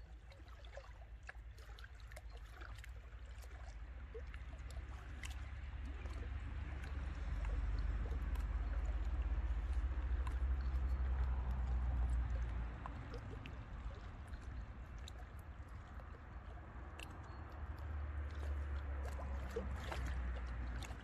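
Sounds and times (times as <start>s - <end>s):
waves lapping against rocks: 0.0s - 21.0s.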